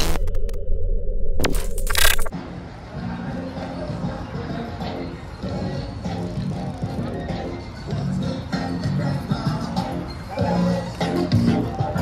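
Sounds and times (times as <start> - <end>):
digital glitch sound effect: 1.4 - 2.3.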